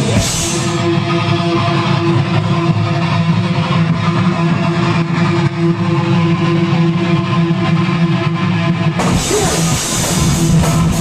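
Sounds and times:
bass guitar riff: 0.0s - 11.0s
distorted electric guitars: 0.0s - 11.0s.

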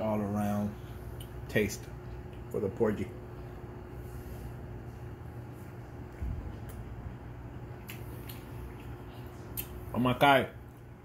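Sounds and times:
steady low hum: 0.0s - 11.0s
man chewing food: 4.8s - 7.0s, 7.6s - 9.8s.

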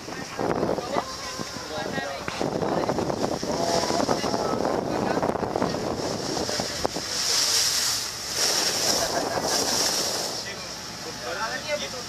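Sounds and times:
wind buffeting microphone: 0.0s - 10.8s
water rushing past boat: 0.0s - 12.0s.

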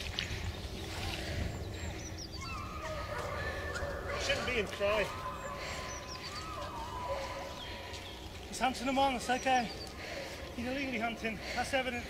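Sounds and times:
hounds howling: 1.9s - 10.7s.

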